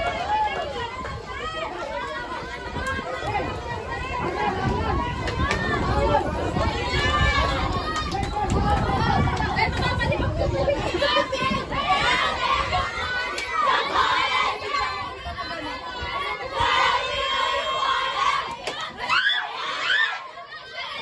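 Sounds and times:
crowd shouting and chattering: 0.0s - 21.0s.

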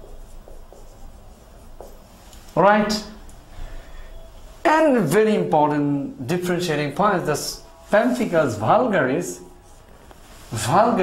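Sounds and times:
marker scratching on whiteboard: 0.0s - 2.2s.

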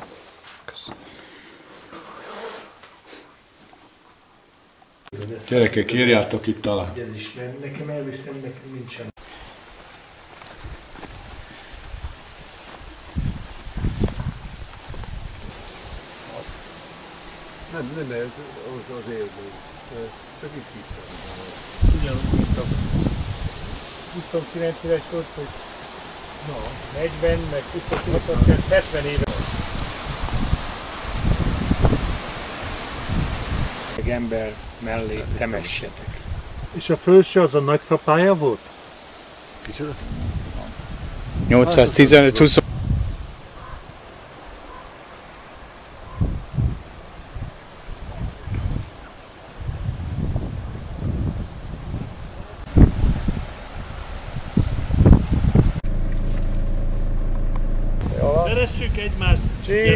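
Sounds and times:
wind through leaves: 0.0s - 59.9s
wind gusting on microphone: 10.6s - 36.8s, 39.0s - 44.9s, 45.5s - 59.9s
steady low hum: 55.8s - 59.0s.

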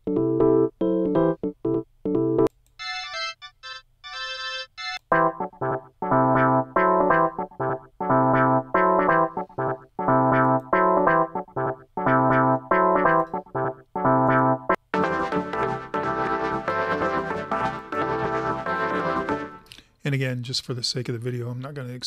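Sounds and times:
keyboard chord stabs: 0.0s - 19.8s
sparse high keyboard notes: 5.1s - 19.7s.

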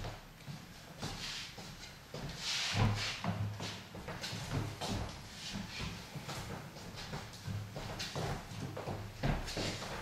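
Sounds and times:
footsteps on wooden floor: 0.0s - 10.0s
shoe sliding scrape: 1.0s - 6.5s.

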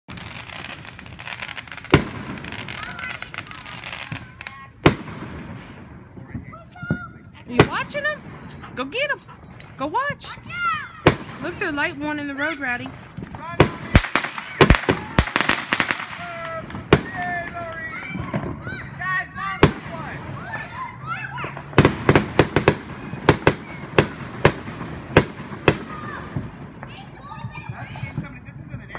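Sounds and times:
fireworks bursting: 0.1s - 28.9s.

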